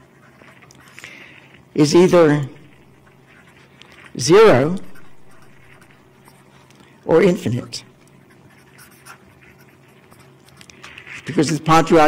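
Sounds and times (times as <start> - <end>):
steady low hum: 0.0 - 12.0
marker pen writing on paper: 2.7 - 6.8, 8.0 - 11.7.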